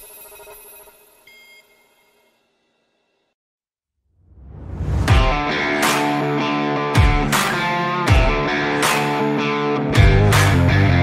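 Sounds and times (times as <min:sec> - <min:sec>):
electronic chime: 0:00.0 - 0:02.9.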